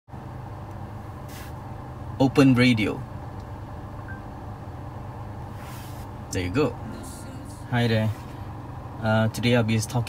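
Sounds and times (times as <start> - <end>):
low hum in car cabin: 0.1 - 10.0
faint beep: 4.1 - 4.3.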